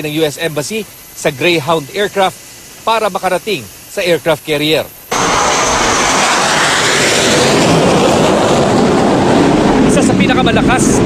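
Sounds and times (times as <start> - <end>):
fighter jet flying low overhead: 5.1 - 11.0.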